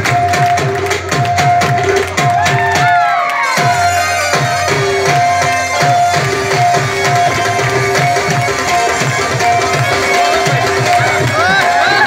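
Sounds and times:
crowd cheering: 0.0s - 4.3s, 4.9s - 12.0s
harmonium: 0.0s - 12.0s.

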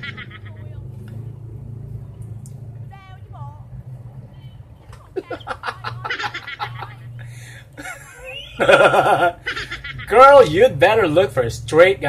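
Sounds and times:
man laughing: 5.2s - 7.0s, 7.7s - 10.4s.

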